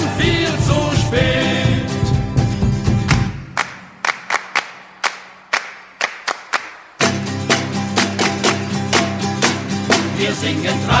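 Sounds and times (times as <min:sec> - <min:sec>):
music: 0:00.0 - 0:03.8, 0:07.0 - 0:11.0.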